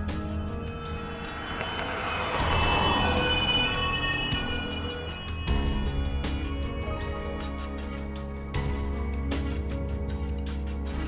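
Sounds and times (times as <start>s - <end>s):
background music sustained tones: 0.0s - 11.0s
van driving past: 0.2s - 6.4s.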